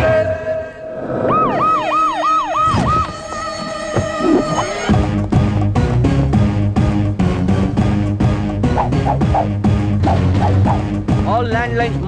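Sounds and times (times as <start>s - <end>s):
police siren: 1.2s - 4.8s.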